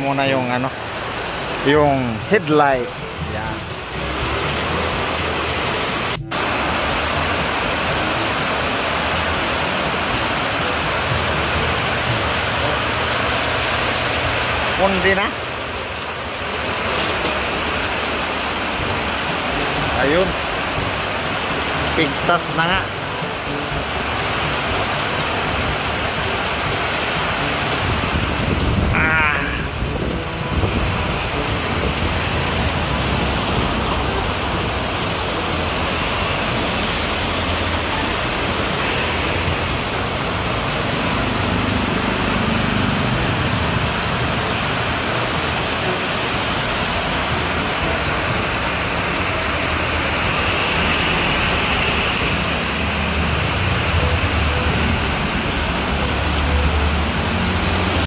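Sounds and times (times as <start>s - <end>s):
heavy rain falling: 0.0s - 58.0s.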